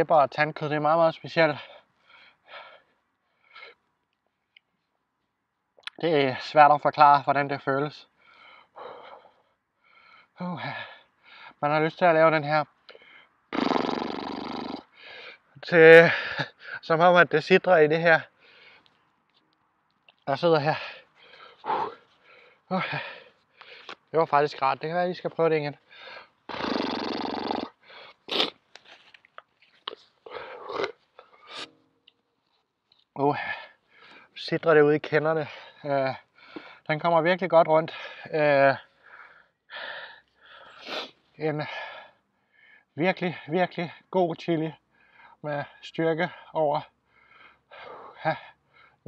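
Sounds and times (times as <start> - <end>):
man breathing hard: 1.6 - 3.8, 8.1 - 11.6, 12.9 - 13.4, 14.9 - 15.5, 18.4 - 18.9, 20.7 - 24.0, 25.8 - 26.6, 27.8 - 28.3, 30.2 - 31.7, 33.4 - 34.4, 35.4 - 36.9, 38.9 - 42.9, 44.9 - 45.4, 46.4 - 49.0
mouth clicks: 13.5 - 15.0, 26.5 - 32.2
sharp hissing breaths: 20.8 - 24.0, 25.9 - 28.5, 39.0 - 42.9.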